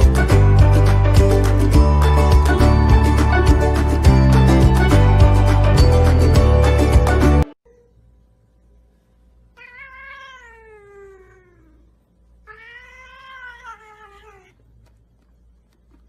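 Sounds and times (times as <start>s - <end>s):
cat meowing: 9.6s - 11.8s, 12.5s - 14.6s.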